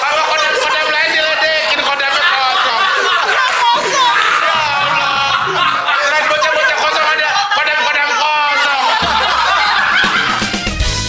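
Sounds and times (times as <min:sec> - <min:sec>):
people laughing: 0:00.0 - 0:11.0
background music: 0:09.1 - 0:11.0.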